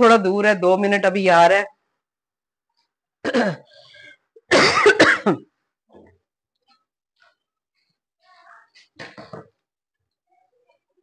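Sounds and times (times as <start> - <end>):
woman coughing: 3.2 - 3.8, 4.5 - 5.5.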